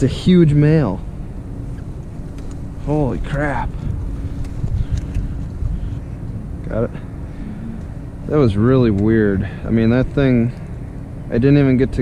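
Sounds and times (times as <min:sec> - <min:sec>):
faint steady hum: 0:00.0 - 0:12.0
wind buffeting microphone: 0:01.7 - 0:10.6.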